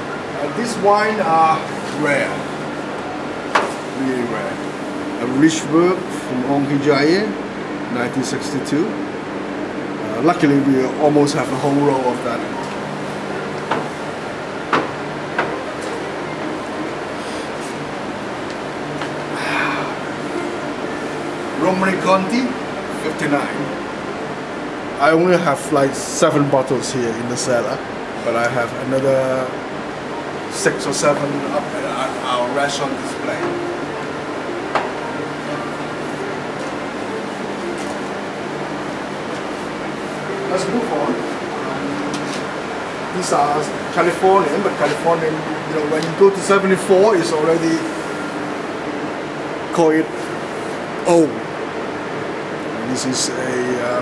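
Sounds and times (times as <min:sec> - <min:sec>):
air conditioning hum: 0:00.0 - 0:54.0.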